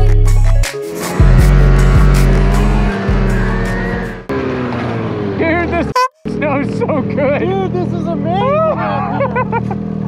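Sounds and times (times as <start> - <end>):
background music: 0.0 - 4.3
snowmobile engine revving: 0.9 - 10.0.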